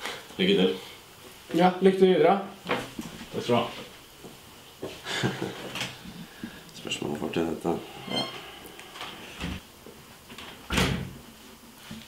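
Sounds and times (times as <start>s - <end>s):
wooden door shutting: 10.7s - 11.2s.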